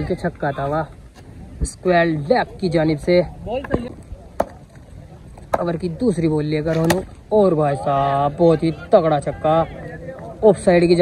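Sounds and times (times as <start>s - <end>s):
cricket bat knocking on road: 3.6s - 4.8s, 5.4s - 5.9s, 6.7s - 7.1s.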